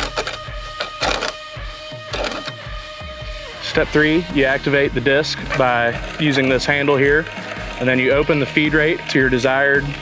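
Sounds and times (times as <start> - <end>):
seed spreader disc clicking and rattling: 0.0 - 1.4, 2.1 - 2.6
background music with guitar: 0.0 - 10.0.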